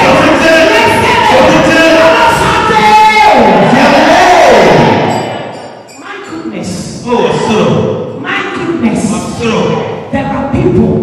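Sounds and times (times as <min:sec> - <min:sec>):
congregation praying: 0:00.0 - 0:11.0.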